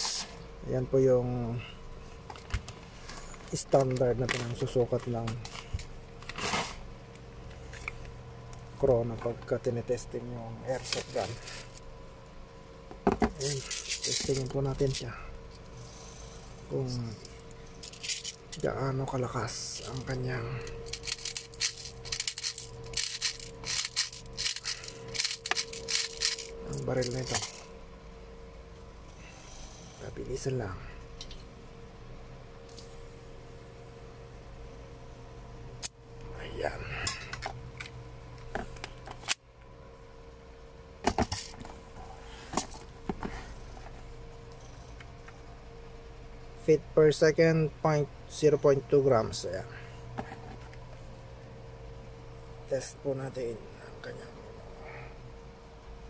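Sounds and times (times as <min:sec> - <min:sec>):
metal magazine clinks and rattles: 0:13.4 - 0:14.6, 0:17.8 - 0:18.4, 0:20.8 - 0:27.7.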